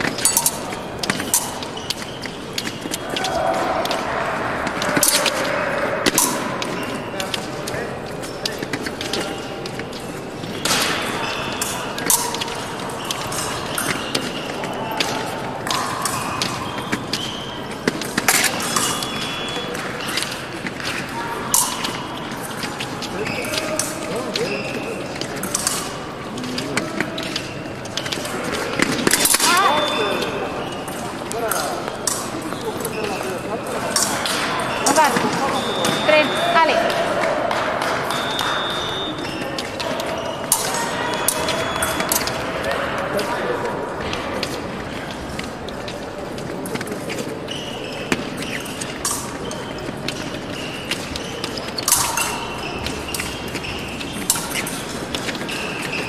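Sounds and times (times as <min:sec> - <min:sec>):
indistinct voices: 0:00.0 - 0:56.0.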